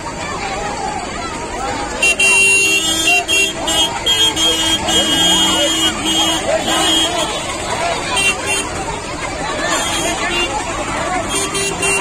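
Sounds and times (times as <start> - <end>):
crowd chatter: 0.0 - 12.0
vehicle horns honking: 1.9 - 8.8, 9.6 - 12.0.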